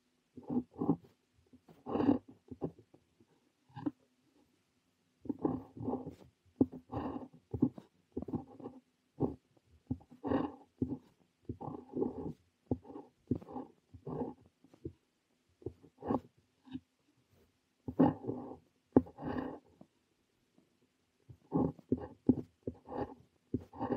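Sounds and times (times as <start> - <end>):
pen nib scratching on paper: 0.4 - 2.8, 5.2 - 15.0, 15.6 - 19.8, 21.3 - 23.9.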